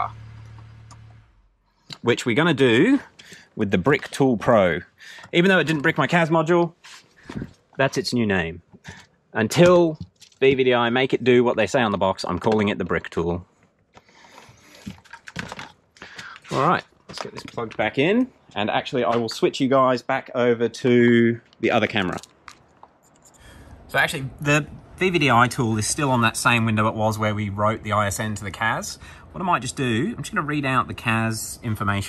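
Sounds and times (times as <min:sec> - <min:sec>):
car engine idling: 0:00.0 - 0:01.7
cable rustling: 0:13.9 - 0:18.3.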